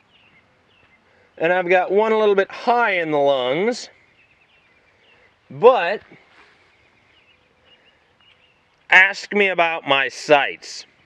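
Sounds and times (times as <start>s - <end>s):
man talking: 1.4s - 3.9s, 5.5s - 6.3s, 8.9s - 10.9s.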